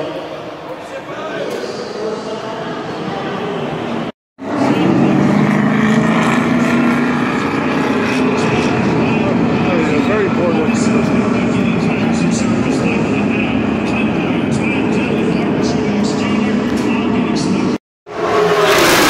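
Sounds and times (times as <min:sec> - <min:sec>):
race cars droning at speed: 0:03.8 - 0:19.0
cars passing: 0:04.4 - 0:19.0.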